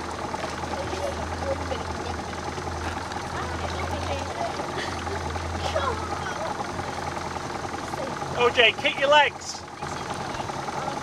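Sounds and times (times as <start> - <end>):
motorboat engine humming: 0.0 - 11.0
water noise: 0.0 - 11.0.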